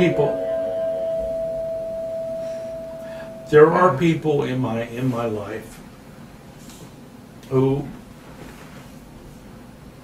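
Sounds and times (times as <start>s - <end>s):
fainter lower tone: 0.0s - 4.2s
steady pure tone: 0.0s - 5.5s.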